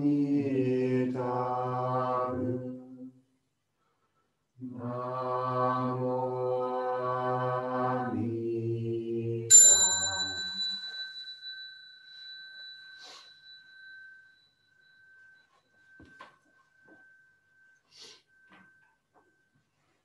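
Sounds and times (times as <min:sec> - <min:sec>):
small bell ringing: 0:09.5 - 0:19.6.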